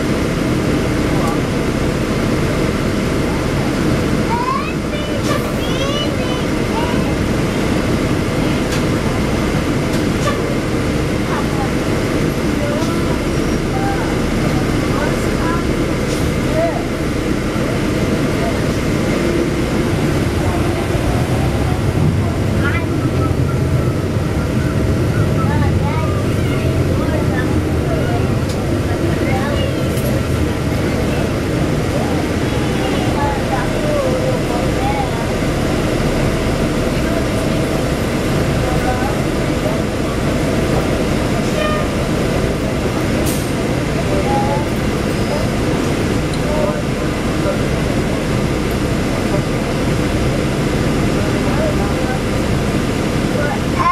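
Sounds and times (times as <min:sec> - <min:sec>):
bus engine and road noise: 0:00.0 - 0:53.9
indistinct passenger voices: 0:00.0 - 0:53.9.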